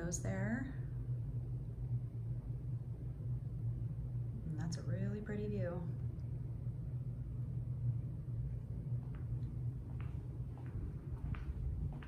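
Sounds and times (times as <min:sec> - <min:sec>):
low room rumble: 0:00.0 - 0:12.0.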